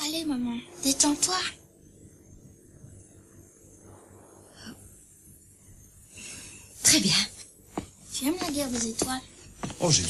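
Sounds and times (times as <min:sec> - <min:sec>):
faint breathy rush: 0:03.8 - 0:05.1.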